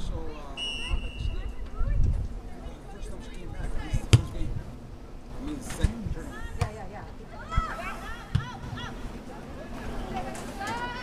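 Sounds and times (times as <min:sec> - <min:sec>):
ball kicked hard: 0:04.1 - 0:04.4.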